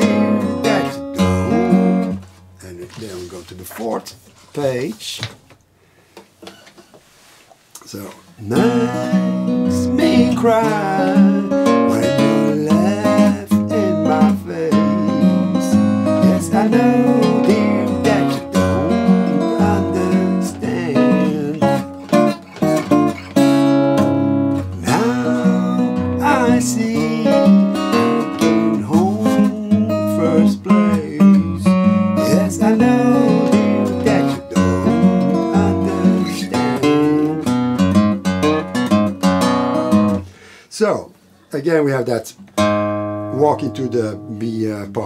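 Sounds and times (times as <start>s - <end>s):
fingerpicked acoustic guitar blues: 0.0s - 4.0s, 7.9s - 40.6s, 41.6s - 45.0s.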